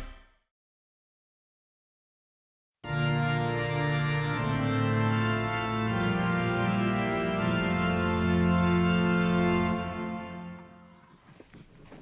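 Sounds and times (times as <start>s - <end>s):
organ playing slow held chords: 2.8s - 11.1s.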